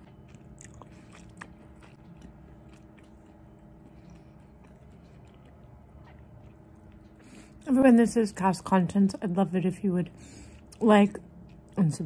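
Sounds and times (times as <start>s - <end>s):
person chewing food: 0.0s - 7.7s.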